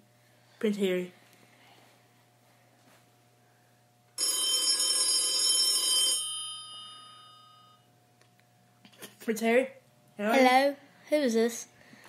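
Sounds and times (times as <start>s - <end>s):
telephone bell ringing: 4.2s - 7.9s.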